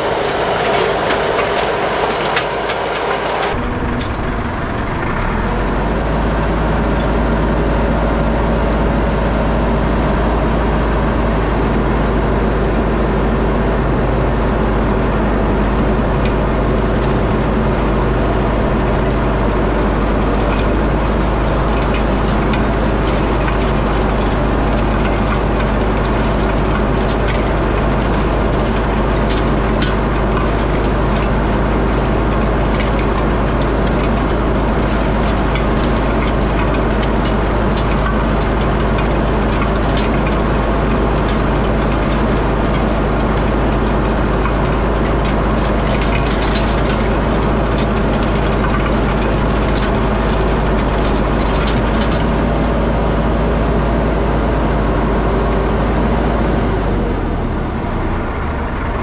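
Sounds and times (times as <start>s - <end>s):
tractor engine running: 0.0s - 59.0s
planter clicks and knocks: 15.7s - 58.3s.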